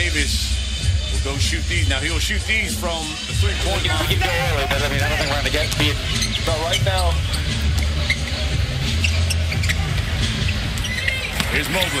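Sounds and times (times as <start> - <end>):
crowd din with low rumble: 0.0 - 12.0
sneakers squeaking on hardwood: 3.7 - 12.0.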